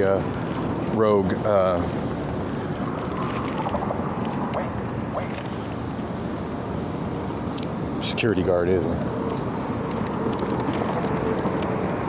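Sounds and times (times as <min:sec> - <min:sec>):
city traffic rush: 0:00.0 - 0:12.0.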